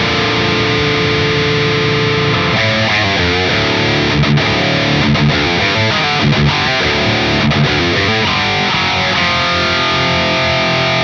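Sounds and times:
distorted electric guitar note: 0.0s - 11.0s.

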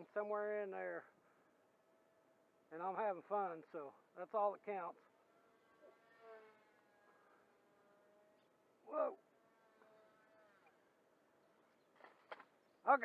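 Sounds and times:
model plane motor whine: 5.0s - 11.7s
man exclaiming: 8.9s - 9.2s.

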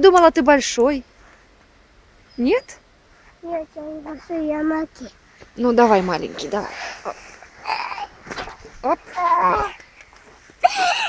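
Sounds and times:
person exclaiming: 8.8s - 9.8s.

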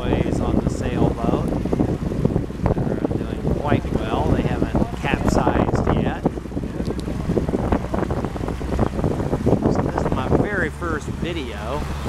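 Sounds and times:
water rushing past boat hull: 0.0s - 12.0s
wind buffeting microphone: 0.0s - 12.0s.

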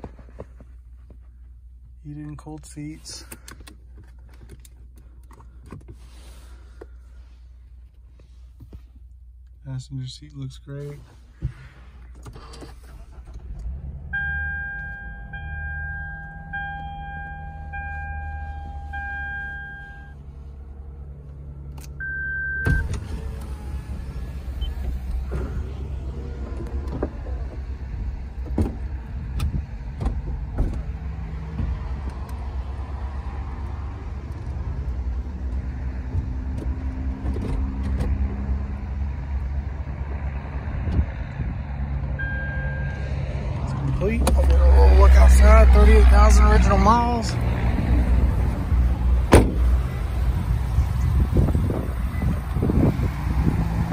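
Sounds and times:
car warning chime beeping: 14.0s - 20.2s, 22.0s - 23.0s, 42.2s - 43.1s.

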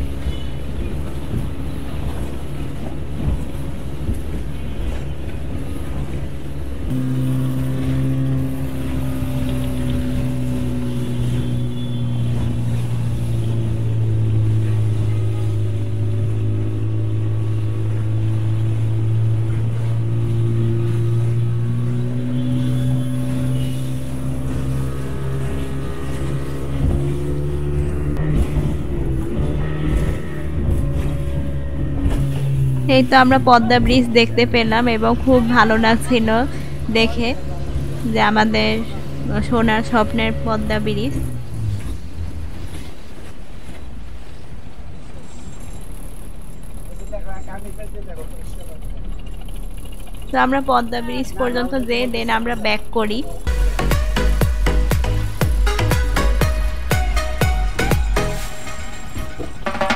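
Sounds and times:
motorboat engine drone: 0.0s - 59.9s
water noise: 0.0s - 59.9s
wind: 0.0s - 59.9s.

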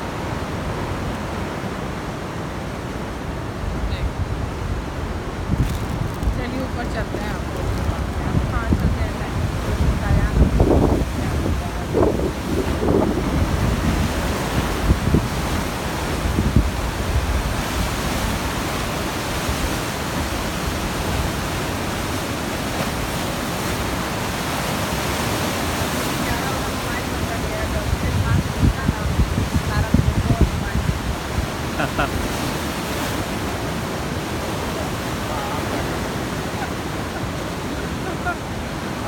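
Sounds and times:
sea surf breaking: 0.0s - 39.0s
wind buffeting microphone: 3.5s - 39.0s.

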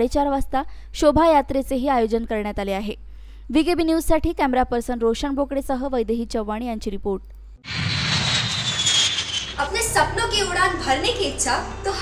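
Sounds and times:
jet airliner flying low: 7.7s - 10.0s.

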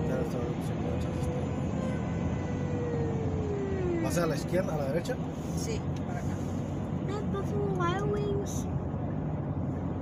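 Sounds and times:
car cabin road rumble: 4.1s - 10.0s.

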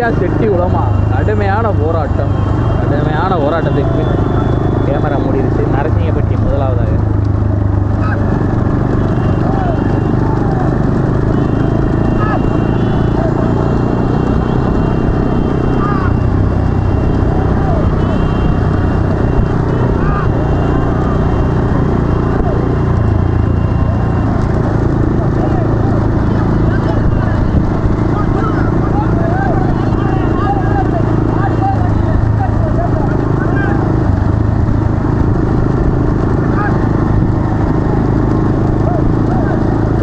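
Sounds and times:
motorcycle engines running: 0.0s - 40.0s
men shouting: 8.0s - 24.3s, 25.0s - 34.1s, 36.3s - 37.0s, 38.5s - 40.0s.

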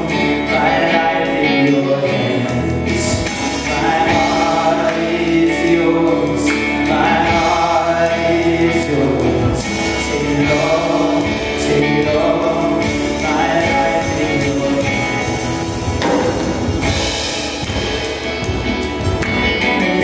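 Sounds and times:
man singing gospel song: 0.0s - 17.2s, 19.6s - 20.0s
acoustic guitar: 0.0s - 20.0s
keyboard: 0.0s - 20.0s.

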